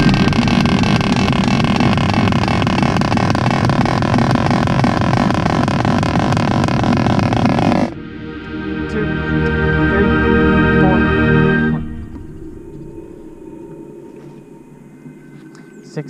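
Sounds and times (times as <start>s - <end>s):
faint held tones: 7.9s - 16.0s.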